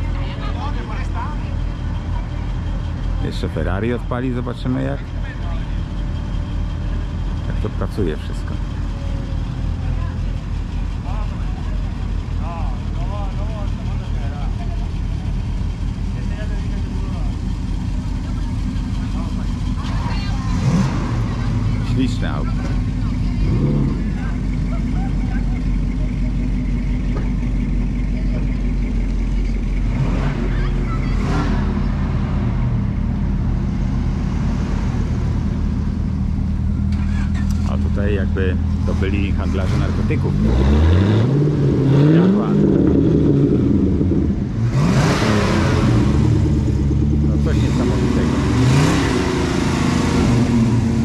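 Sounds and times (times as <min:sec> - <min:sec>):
car driving slowly past: 0:00.0 - 0:51.0
car engines at low revs: 0:00.0 - 0:51.0.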